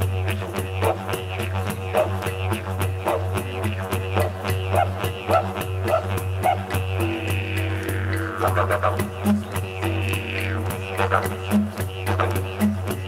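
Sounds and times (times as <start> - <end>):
didgeridoo drone: 0.0 - 13.0.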